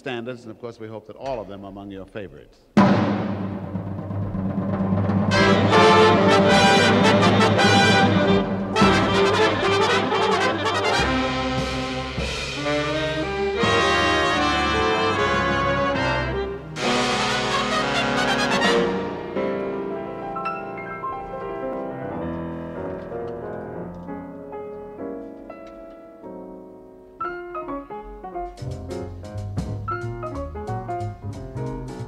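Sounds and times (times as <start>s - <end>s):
drums: 1.2s - 21.4s, 27.3s - 32.0s
big band brass chords: 2.8s - 22.8s.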